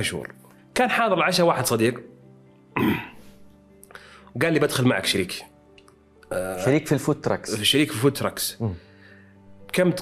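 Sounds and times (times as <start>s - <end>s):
quiet background music: 0.0s - 10.0s
man clearing his throat: 2.8s - 3.2s.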